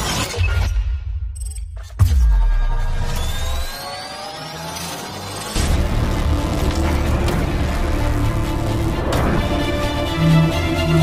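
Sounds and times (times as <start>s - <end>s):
music: 5.5s - 11.0s
deep bass drone: 5.6s - 11.0s.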